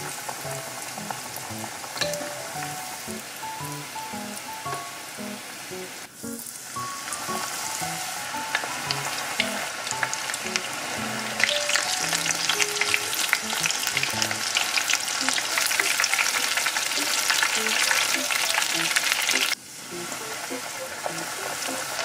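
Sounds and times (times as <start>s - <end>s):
shrimp deep-frying in oil: 0.0s - 22.0s.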